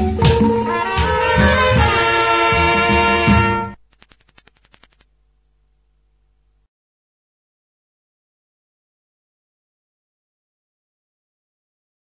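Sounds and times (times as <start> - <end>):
faint clicks: 3.8 - 5.1.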